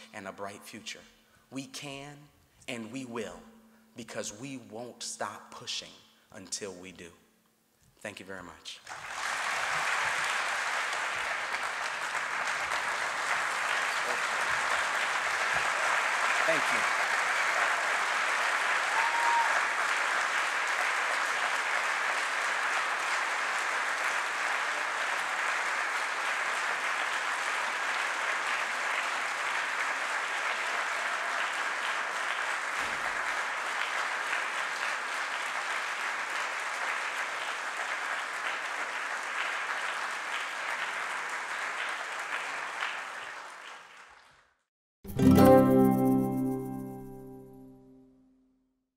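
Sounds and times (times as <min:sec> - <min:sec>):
large audience applauding: 0:08.8 - 0:44.6.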